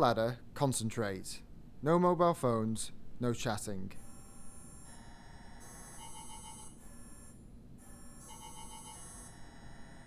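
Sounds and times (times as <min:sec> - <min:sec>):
mobile phone ringtone: 0:05.1 - 0:10.0.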